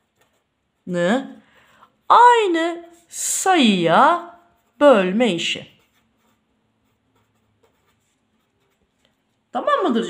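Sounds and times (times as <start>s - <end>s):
marker scratching on paper: 0.0s - 10.0s.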